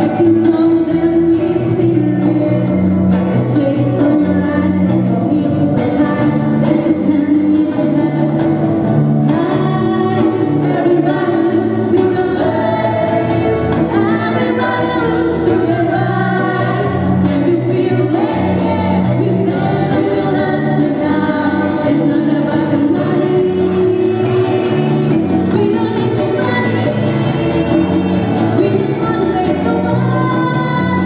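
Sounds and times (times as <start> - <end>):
live band with guitars: 0.0 - 31.0
woman singing: 0.0 - 31.0.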